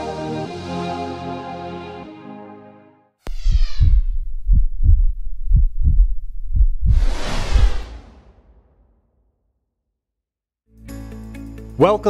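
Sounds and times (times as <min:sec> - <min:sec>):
heartbeat effect low thumps: 0:03.3 - 0:08.0.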